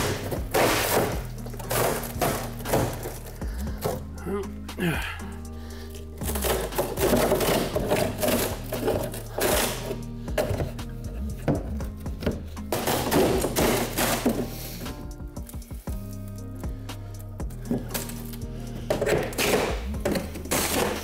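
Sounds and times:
wood cracking and splitting: 0.0 - 5.0, 5.8 - 10.8, 11.4 - 14.6, 17.6 - 21.0
background music: 0.0 - 21.0.

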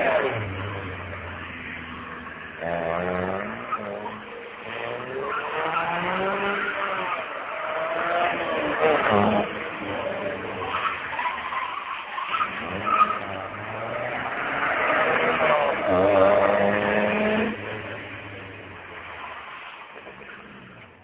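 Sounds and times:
car engine revving: 0.0 - 21.0
tyres skidding: 0.0 - 21.0.

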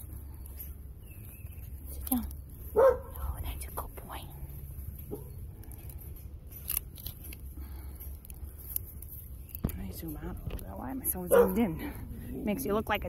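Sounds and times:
puppy barking: 2.7 - 3.2, 5.1 - 5.4, 11.2 - 11.9
puppy yelping: 2.7 - 3.2.

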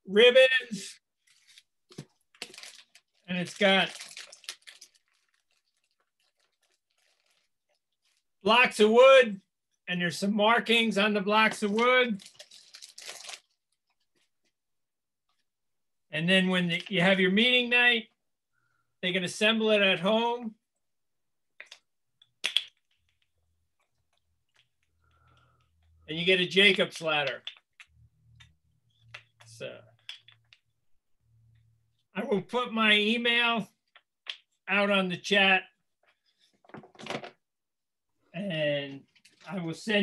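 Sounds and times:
bag being rummaged through: 3.9 - 8.2.

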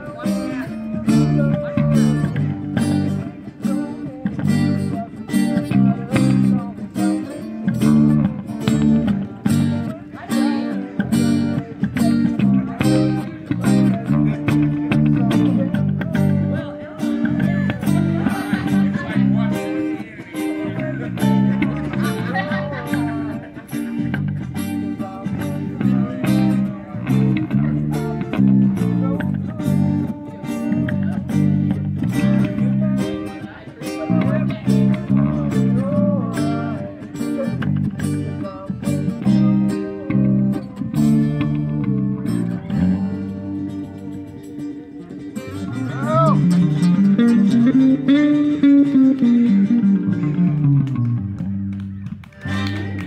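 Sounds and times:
acoustic guitars: 0.0 - 53.0
electric bass guitar: 0.0 - 53.0.

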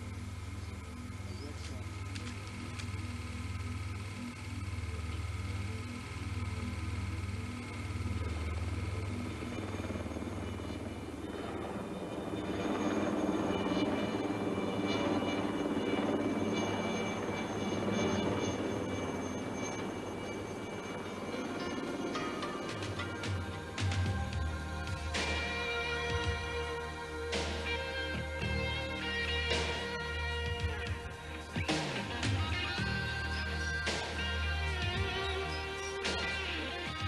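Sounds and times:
background music: 0.0 - 37.0
helicopter rotor beating: 0.0 - 37.0.

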